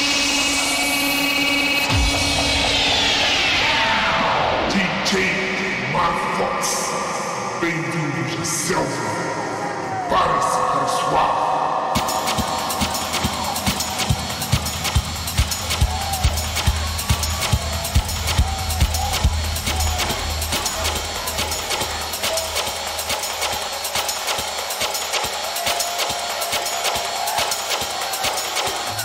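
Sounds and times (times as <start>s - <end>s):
electronic dance music: 0.0s - 29.0s.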